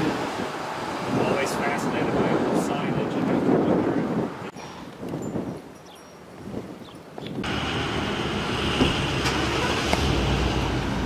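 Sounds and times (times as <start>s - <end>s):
traffic noise: 0.0s - 4.9s, 7.0s - 11.0s
wind on microphone: 0.0s - 11.0s.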